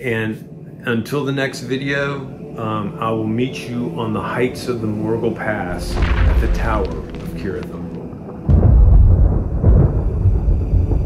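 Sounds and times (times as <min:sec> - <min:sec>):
sudden crack: 0:05.7 - 0:10.1
low rumble of thunder: 0:05.7 - 0:11.0.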